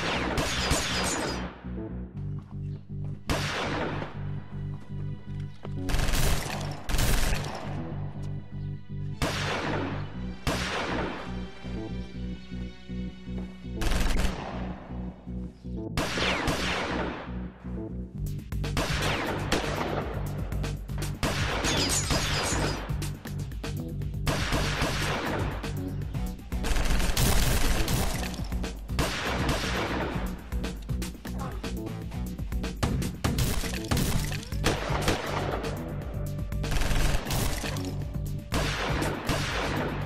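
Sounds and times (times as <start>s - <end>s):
rapid gunfire: 0.0s - 1.4s, 5.9s - 7.6s, 13.8s - 14.6s, 24.3s - 25.6s, 26.6s - 28.4s, 29.0s - 30.3s, 32.8s - 35.8s, 36.7s - 37.8s, 38.5s - 40.0s
film music with low bass: 0.0s - 40.0s
heavy gunshots: 3.3s - 4.2s, 18.8s - 20.2s, 24.3s - 25.6s, 26.6s - 28.4s, 29.0s - 30.3s, 38.5s - 40.0s.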